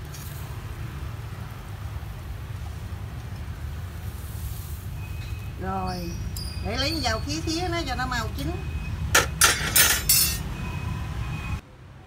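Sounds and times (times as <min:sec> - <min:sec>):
metal tongs scraping grill rack: 0:09.2 - 0:10.4.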